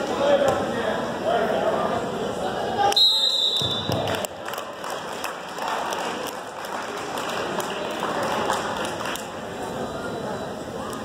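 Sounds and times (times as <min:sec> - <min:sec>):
spectators applauding: 0:04.0 - 0:09.4.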